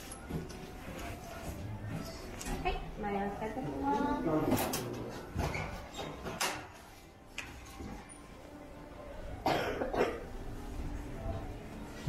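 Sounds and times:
low room noise: 0:00.0 - 0:12.0
person coughing: 0:09.4 - 0:10.3.

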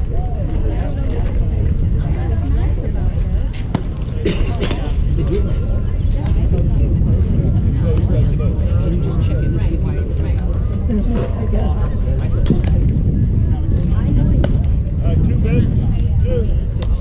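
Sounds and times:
distant chatter: 0:00.0 - 0:17.0
steady low rumble: 0:00.0 - 0:17.0.

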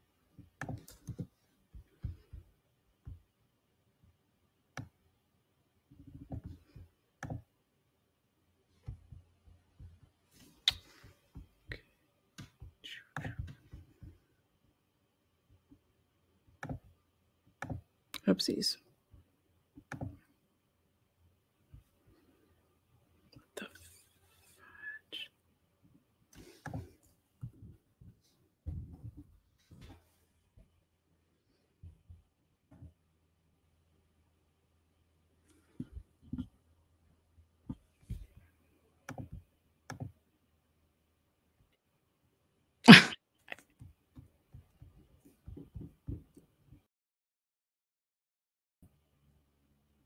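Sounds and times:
person sneezing: 0:42.9 - 0:43.2.

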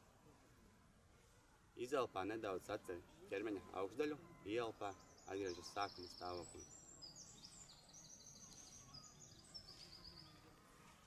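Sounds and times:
bird singing high rapid trills: 0:01.9 - 0:10.6.

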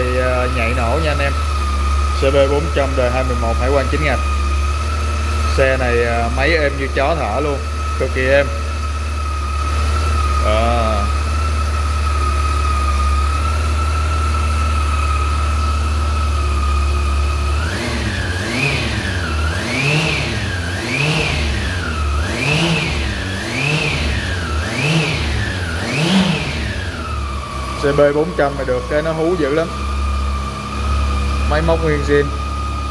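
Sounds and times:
motorcycle engine idling and revving: 0:00.0 - 0:32.9.

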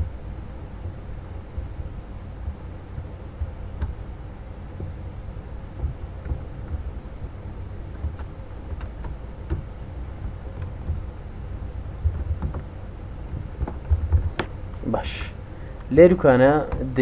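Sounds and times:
low background rumble: 0:00.0 - 0:17.0
keyboard keys clicking: 0:12.0 - 0:12.7.

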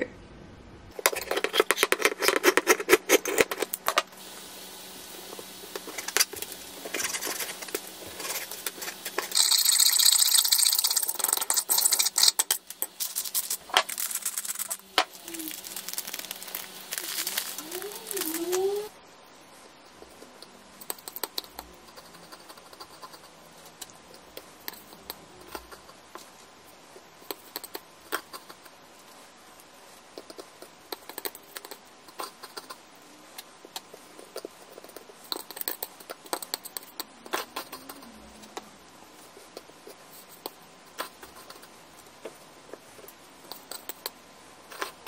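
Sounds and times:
fork beating egg on a plate: 0:01.0 - 0:04.0, 0:05.3 - 0:18.9, 0:19.9 - 0:26.2, 0:27.2 - 0:28.8, 0:30.2 - 0:32.8, 0:33.7 - 0:38.1, 0:39.2 - 0:45.0.

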